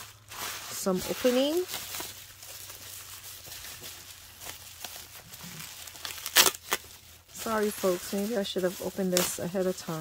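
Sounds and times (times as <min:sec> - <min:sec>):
bubble wrap rustling and crinkling: 0:00.0 - 0:10.0.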